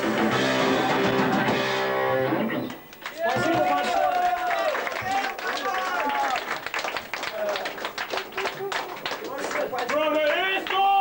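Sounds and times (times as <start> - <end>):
hardcore band playing: 0.0 - 2.8
scattered claps: 2.7 - 11.0.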